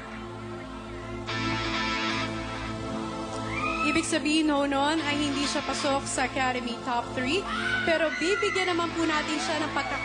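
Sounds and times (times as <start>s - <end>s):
sustained synth chords: 0.0s - 7.6s.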